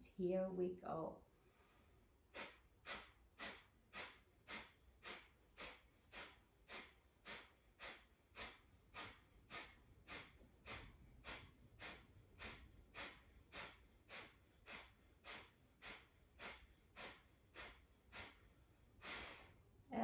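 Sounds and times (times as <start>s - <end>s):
woman breathing sharply: 1.4s - 19.7s.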